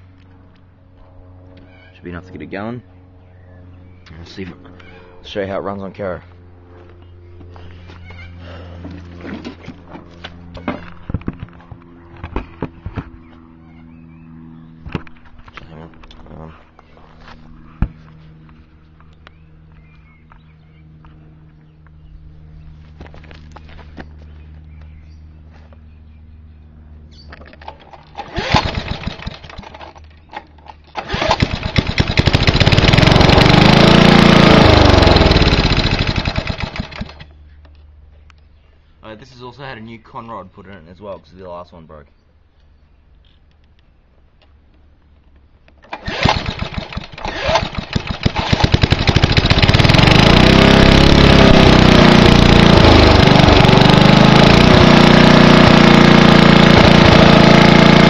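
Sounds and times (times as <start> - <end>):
lawnmower engine starting and running: 7.6 - 11.6, 27.3 - 37.4, 45.8 - 58.0.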